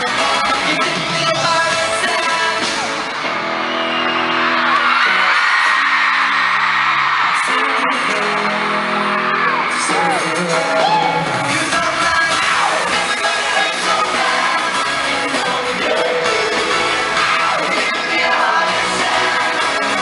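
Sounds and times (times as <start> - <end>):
live pop band with singing: 0.0 - 20.0
fans screaming: 0.4 - 20.0.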